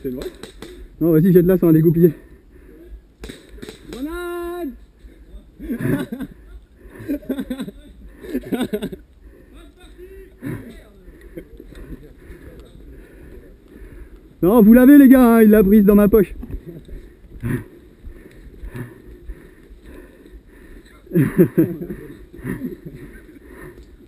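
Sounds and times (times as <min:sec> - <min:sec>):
men calling and talking: 0:00.0 - 0:24.0.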